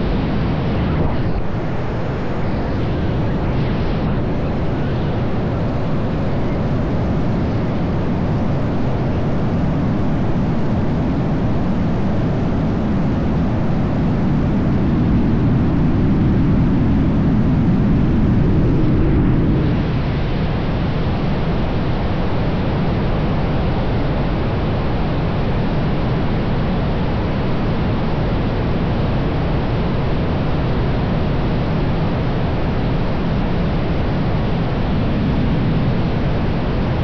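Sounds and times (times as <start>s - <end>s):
rushing wind noise: 0.0s - 37.0s.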